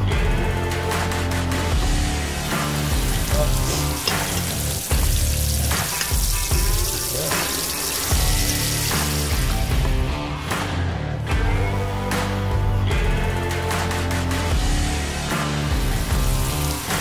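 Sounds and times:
background music: 0:00.0 - 0:17.0
hot oil sizzling: 0:01.8 - 0:10.1, 0:15.4 - 0:17.0.

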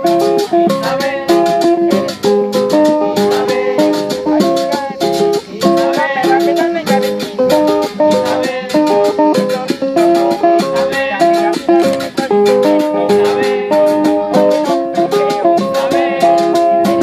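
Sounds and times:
acoustic guitars playing: 0:00.0 - 0:17.0.

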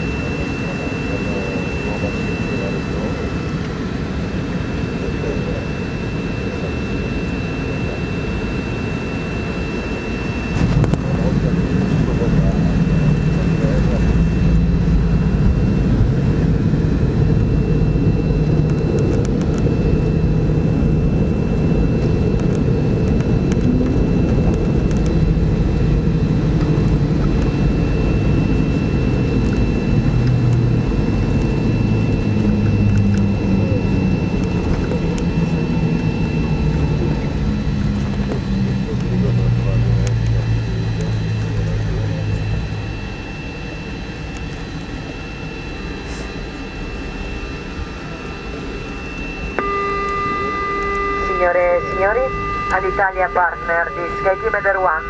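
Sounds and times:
airplane cabin rumble: 0:00.0 - 0:55.0
jet engines droning: 0:00.0 - 0:55.0
thin steady whine: 0:00.0 - 0:55.0.

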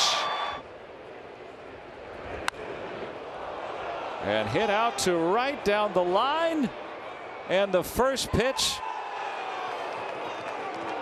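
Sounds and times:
crowd cheering: 0:00.0 - 0:00.6, 0:02.6 - 0:11.0
stadium crowd murmur: 0:00.0 - 0:08.3.

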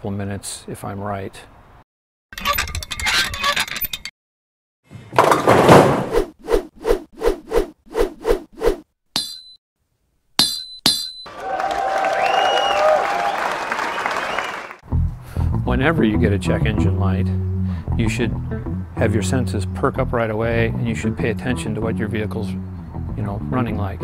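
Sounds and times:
crash: 0:05.1 - 0:06.1
ringing ping: 0:09.2 - 0:09.6, 0:10.4 - 0:11.3
sharp clinks: 0:09.2 - 0:09.6, 0:10.4 - 0:11.3
applause-like noise: 0:11.3 - 0:14.8.

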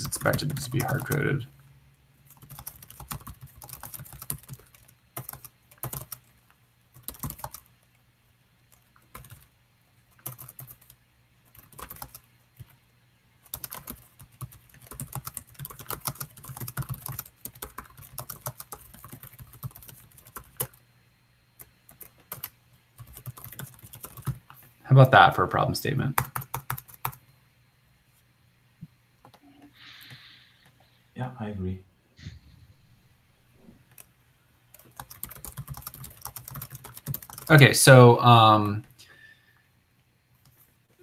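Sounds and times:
typing on computer keyboard: 0:00.0 - 0:01.3, 0:02.3 - 0:07.7, 0:08.7 - 0:09.5, 0:10.1 - 0:12.8, 0:13.4 - 0:20.8, 0:21.6 - 0:24.5, 0:26.2 - 0:27.2, 0:34.7 - 0:37.6.

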